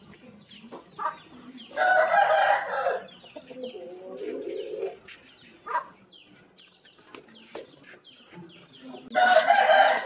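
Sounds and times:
rooster crowing: 0:01.8 - 0:03.1, 0:09.2 - 0:10.0.

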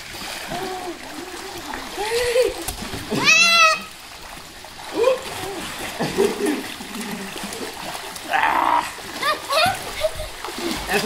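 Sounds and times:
swimmers splashing in pool: 0:00.0 - 0:11.0.

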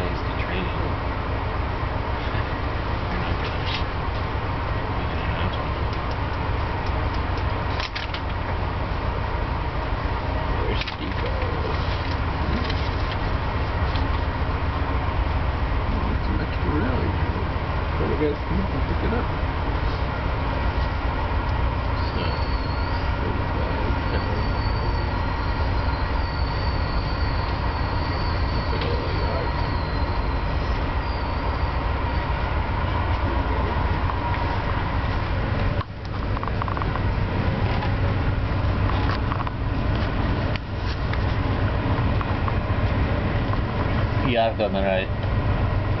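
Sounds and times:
train rumbling on rails: 0:00.0 - 0:46.0
high wavering squeal: 0:21.8 - 0:34.3.

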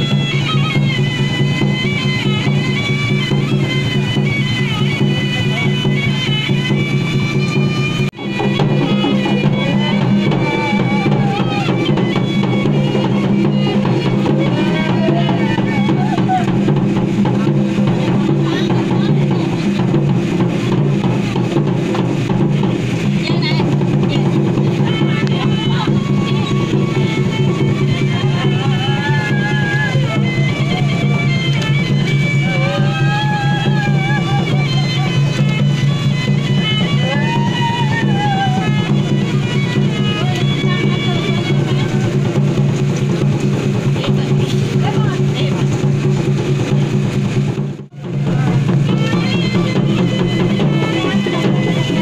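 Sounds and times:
percussion: 0:00.0 - 0:52.0.

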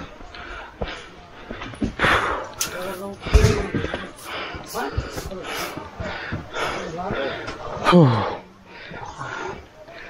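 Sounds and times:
people talking: 0:00.0 - 0:10.0
low thumps: 0:03.2 - 0:04.2.

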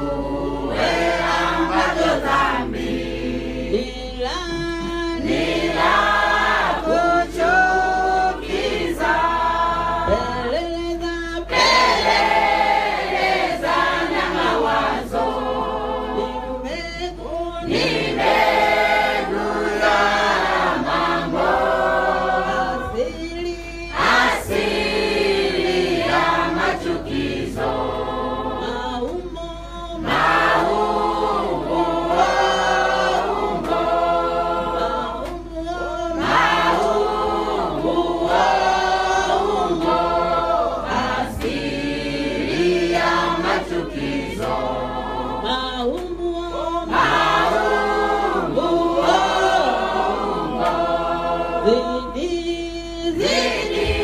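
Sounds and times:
congregation singing: 0:00.0 - 0:54.0.

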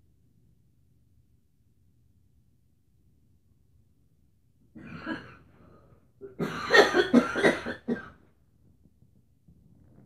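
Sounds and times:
person coughing: 0:04.8 - 0:08.2.

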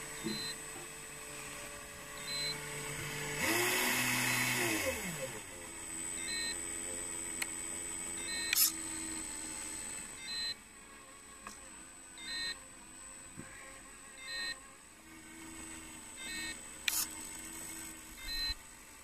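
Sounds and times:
low electric hum: 0:00.0 - 0:19.0
steady high whine: 0:00.0 - 0:19.0
short electronic beeps: 0:00.2 - 0:00.6, 0:02.2 - 0:02.6, 0:06.2 - 0:06.6, 0:08.2 - 0:08.8, 0:10.2 - 0:10.6, 0:12.2 - 0:12.6, 0:14.2 - 0:14.6, 0:16.2 - 0:17.1, 0:18.2 - 0:18.6
sharp click: 0:08.4 - 0:08.8, 0:16.8 - 0:17.1.

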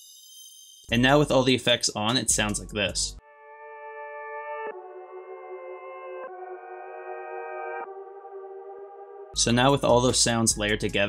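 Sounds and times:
ambient synth chords: 0:03.2 - 0:10.3.

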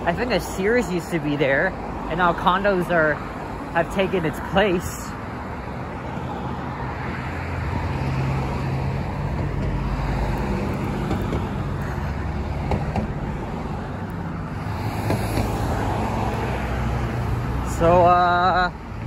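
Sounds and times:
cars driving past: 0:00.0 - 0:19.0.

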